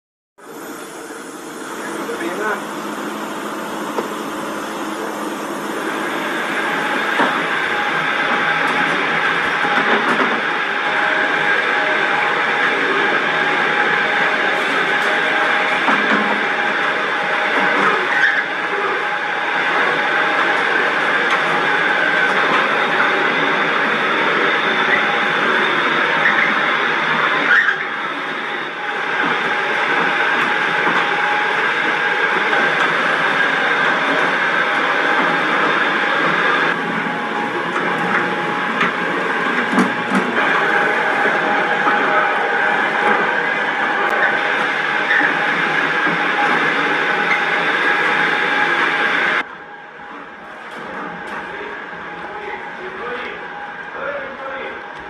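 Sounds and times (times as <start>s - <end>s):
electric dough mixers running: 0.4s - 54.0s.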